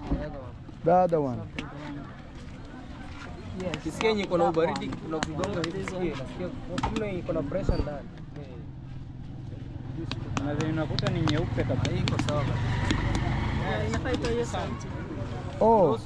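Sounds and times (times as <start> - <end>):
vehicle engine rumble: 2.1 - 16.0.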